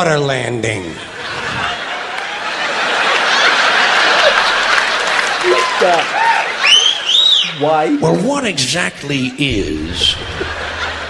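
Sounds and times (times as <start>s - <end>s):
audience laughing and applauding: 1.2s - 7.4s, 9.5s - 11.0s
man laughing: 9.5s - 11.0s.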